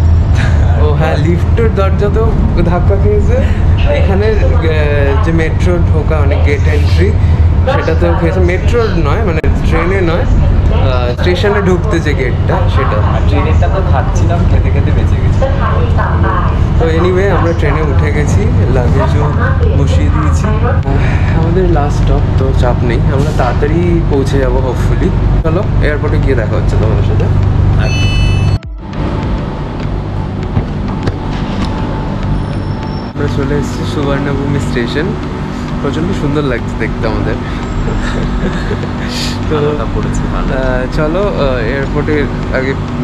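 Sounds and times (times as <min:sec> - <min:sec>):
metro train rumble: 0:00.0 - 0:43.0
station platform hum: 0:00.0 - 0:43.0
man talking: 0:00.4 - 0:13.6, 0:16.8 - 0:28.1, 0:33.2 - 0:43.0
faint voices: 0:00.4 - 0:28.0, 0:33.1 - 0:43.0
high electronic tone: 0:27.6 - 0:33.8.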